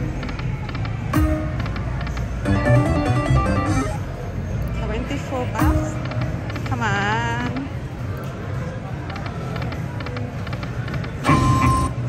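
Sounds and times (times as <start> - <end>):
electronic slot machine sounds: 0.0 - 4.2, 9.0 - 12.0
low casino hum: 0.0 - 12.0.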